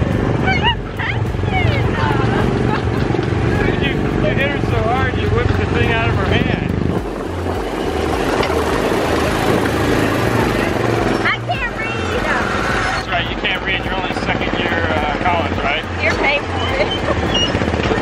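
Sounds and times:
small gasoline engine running: 0.0s - 18.0s.

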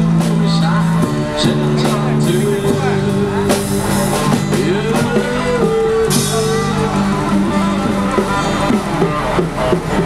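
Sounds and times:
street band playing pop: 0.0s - 10.0s.

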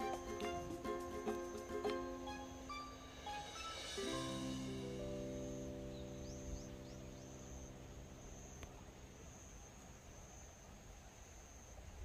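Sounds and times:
background music: 0.0s - 8.6s
high-pitched insect trill: 0.0s - 10.5s.

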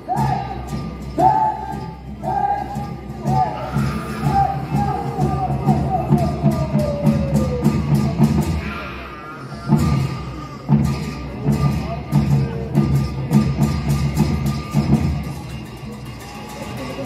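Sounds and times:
drum and cymbals dance beat: 9.7s - 16.1s.

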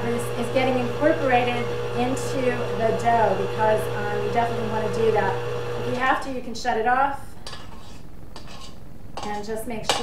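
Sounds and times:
spatula scraping metal bowl: 7.4s - 10.0s.

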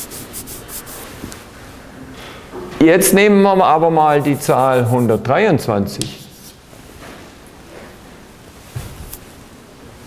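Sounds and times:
dry rubbing strokes: 0.0s - 1.2s, 4.2s - 5.3s, 6.0s - 6.6s.

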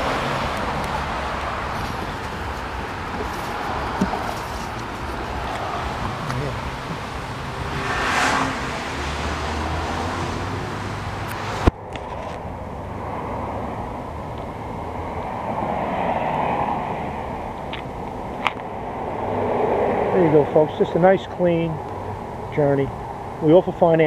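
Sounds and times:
road traffic noise: 0.0s - 24.0s
vehicles passing by: 0.0s - 24.0s.

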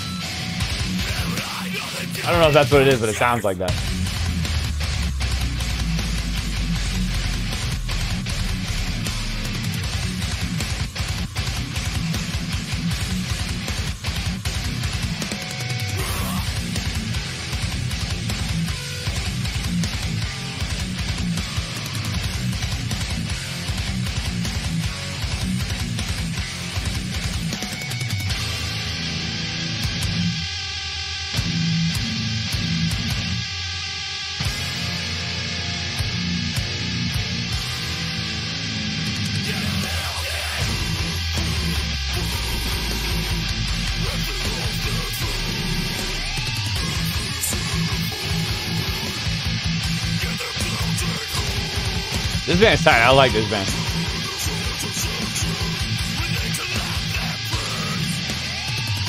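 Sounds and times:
deathcore song with heavy guitars: 0.0s - 59.0s.

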